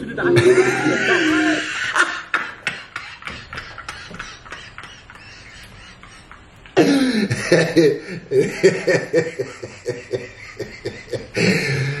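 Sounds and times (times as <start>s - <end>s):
man laughing hard and wheezing: 0.0s - 12.0s.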